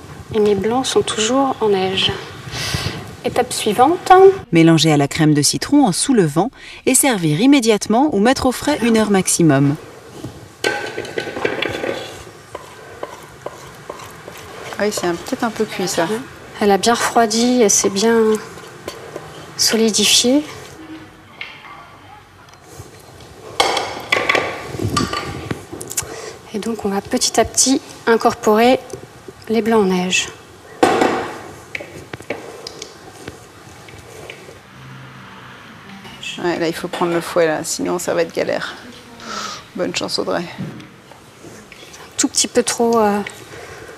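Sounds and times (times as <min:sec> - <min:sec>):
wooden spoon scraping saucepan: 0:08.9 - 0:21.1, 0:31.2 - 0:34.6
spatula scraping glass bowl: 0:11.0 - 0:16.2.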